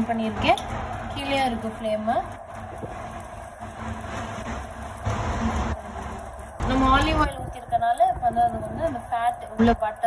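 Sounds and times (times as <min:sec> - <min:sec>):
oven rotisserie motor humming: 0:00.0 - 0:10.0.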